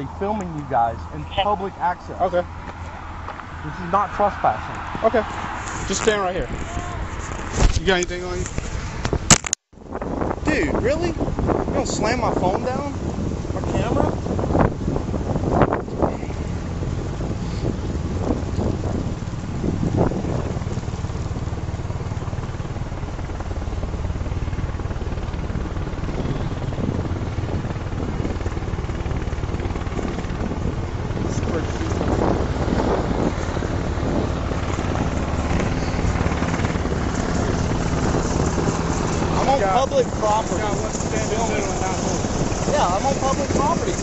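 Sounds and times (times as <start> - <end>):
helicopter rotor and engine rumble: 0.0 - 44.0
wind on microphone: 0.0 - 44.0.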